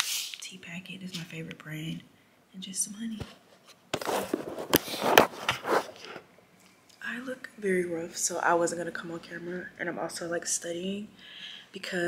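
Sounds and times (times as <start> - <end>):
camera handling rustling: 3.6 - 6.3.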